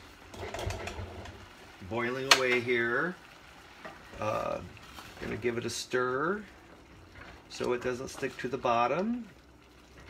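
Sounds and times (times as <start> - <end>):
sauce bubbles popping: 0.0 - 10.0.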